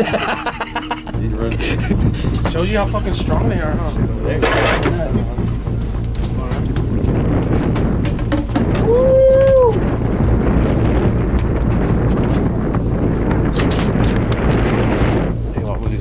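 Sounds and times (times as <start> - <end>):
low rumble: 0.0 - 16.0
wind rushing over microphone: 0.0 - 16.0.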